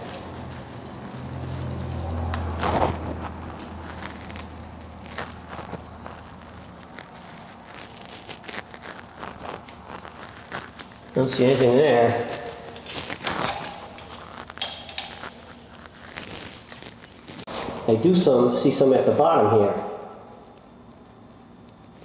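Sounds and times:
brush dabbing on fittings: 0.0s - 17.4s
low steady hum: 0.0s - 22.0s.

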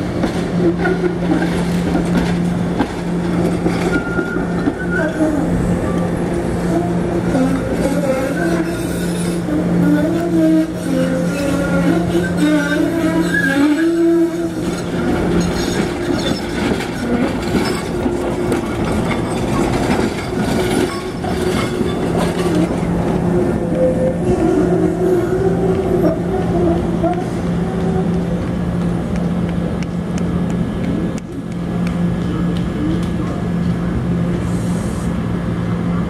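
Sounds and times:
trolley electrical hum: 0.0s - 36.0s
wheel squeal on curve: 3.8s - 5.2s, 13.1s - 14.2s
wheels ticking over rail joints: 14.6s - 23.8s.

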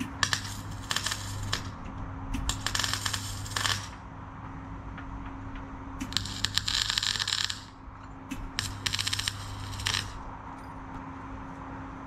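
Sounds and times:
electric arc welding crackling: 0.0s - 1.8s, 2.4s - 4.0s, 6.0s - 10.2s
low hum: 0.0s - 12.0s.

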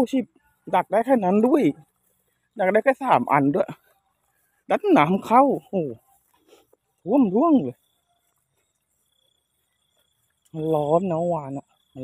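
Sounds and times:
faint cricket chirping: 0.0s - 12.0s.

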